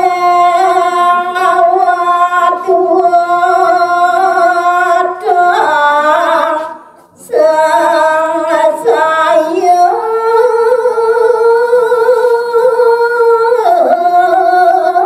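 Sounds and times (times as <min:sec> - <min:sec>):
woman singing unaccompanied: 0:00.0 - 0:15.0.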